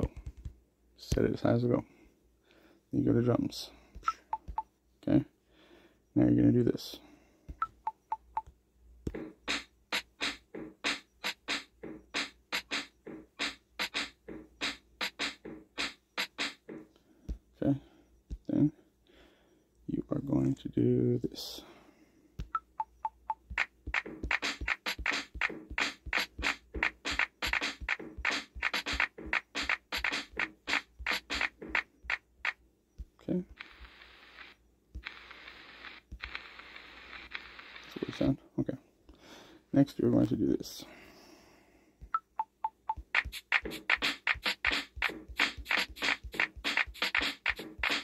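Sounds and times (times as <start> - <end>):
fast repeating drum sample: 9.1 - 16.7, 22.6 - 32.6, 42.2 - 48.0.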